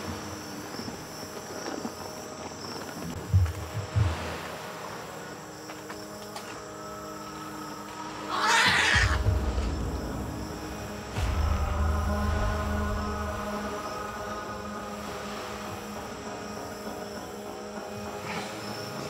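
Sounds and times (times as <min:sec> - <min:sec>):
night insects: 0:00.0 - 0:19.0
suspense music: 0:00.0 - 0:19.0
low rumble: 0:09.1 - 0:15.3.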